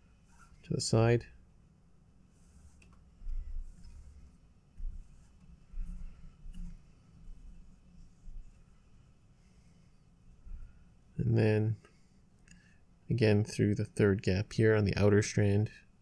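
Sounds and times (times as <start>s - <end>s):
cord rustling and bumping: 2.6s - 7.7s.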